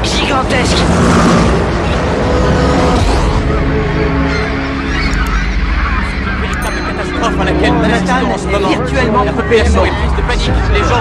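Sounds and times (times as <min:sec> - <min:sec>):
dramatic orchestral music: 0:00.8 - 0:11.0.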